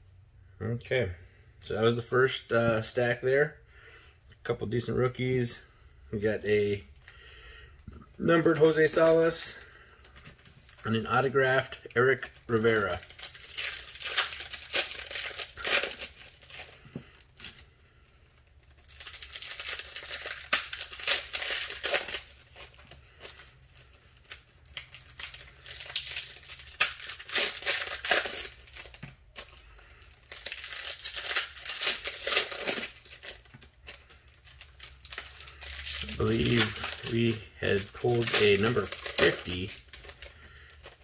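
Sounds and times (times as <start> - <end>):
foil wrappers tearing and crinkling: 8.2 - 9.8, 10.8 - 17.6, 18.4 - 41.0.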